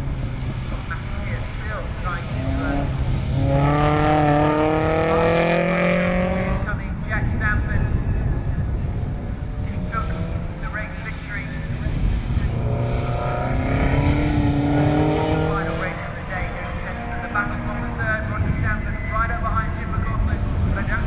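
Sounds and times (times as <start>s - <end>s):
racing car engines accelerating: 0.0s - 21.0s.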